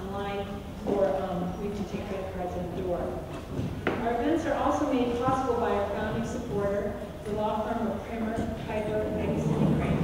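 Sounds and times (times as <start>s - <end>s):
woman speaking into a microphone: 0.0s - 3.3s, 3.9s - 10.0s.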